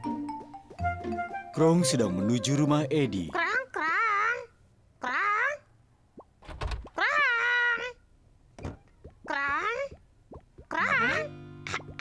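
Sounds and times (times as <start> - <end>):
squeaky cartoon voice calling: 10.7 - 11.3.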